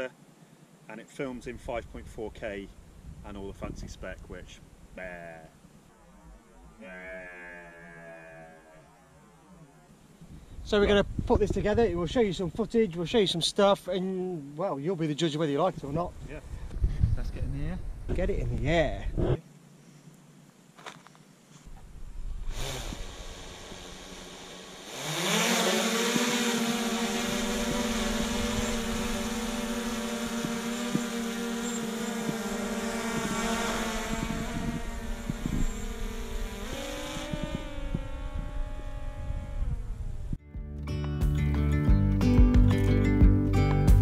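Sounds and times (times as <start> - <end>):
drone propellers whirring: 5.8 - 10.7, 21.7 - 40.4
background music: 40.5 - 44.0.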